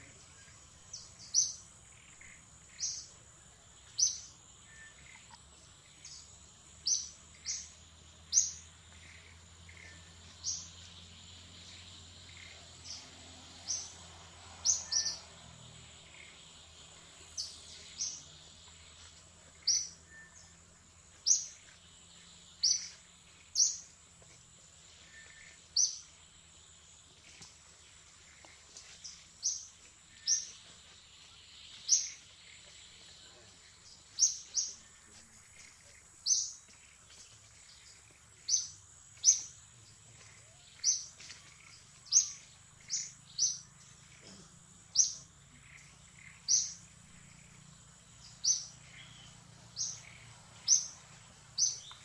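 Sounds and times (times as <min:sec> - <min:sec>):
bird chirping: 0:00.0 - 0:52.0.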